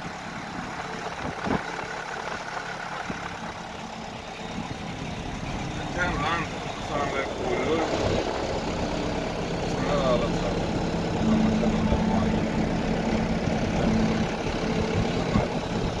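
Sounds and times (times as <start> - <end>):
vehicle engine and road noise: 0.0 - 16.0
low hum: 8.8 - 16.0.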